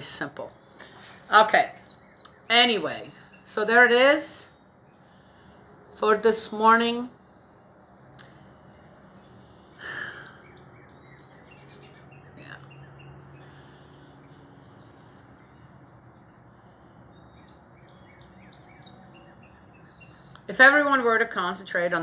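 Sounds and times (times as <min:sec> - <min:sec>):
low background hum: 0:00.0 - 0:22.0
small birds chirping: 0:00.0 - 0:22.0.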